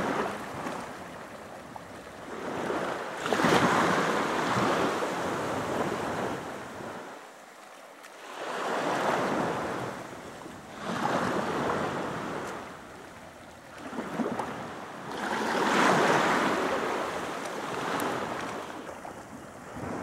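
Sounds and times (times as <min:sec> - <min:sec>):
small waves washing ashore: 0:00.0 - 0:20.0.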